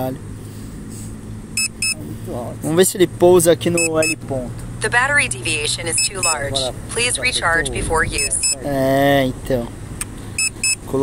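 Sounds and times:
steady low hum: 0.0 - 10.7
people talking indistinctly: 1.8 - 9.8.

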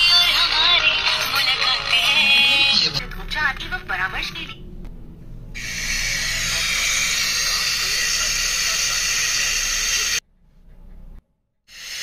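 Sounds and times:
radio static hiss: 5.6 - 10.2.

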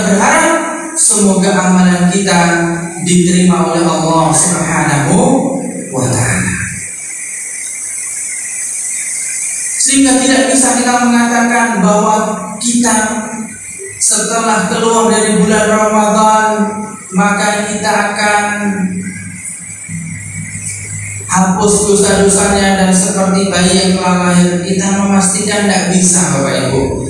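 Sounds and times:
man talking over loudspeaker: 0.0 - 6.9, 9.8 - 27.0
high-pitched whine: 0.0 - 27.0
low hum: 1.1 - 27.0.

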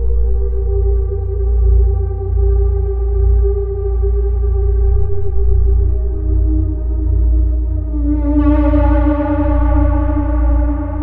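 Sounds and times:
ambient synthesizer drone: 0.0 - 11.0.

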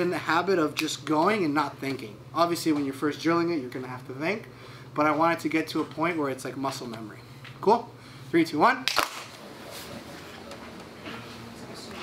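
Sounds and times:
low room noise: 0.0 - 12.0
sharp hand clap: 8.8 - 9.4.

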